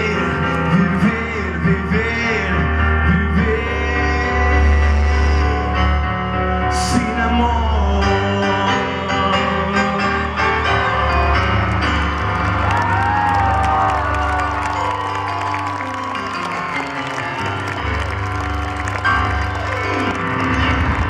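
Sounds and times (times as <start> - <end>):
live band with piano: 0.0 - 21.0
audience cheering: 10.1 - 21.0
audience applause: 11.0 - 21.0.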